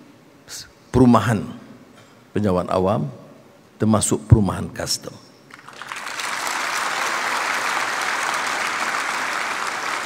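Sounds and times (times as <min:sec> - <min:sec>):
large audience applauding: 0:05.5 - 0:10.0.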